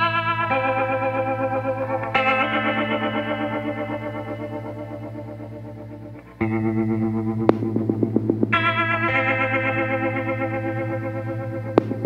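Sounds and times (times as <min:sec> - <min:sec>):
sustained background music chords: 0:00.0 - 0:12.0.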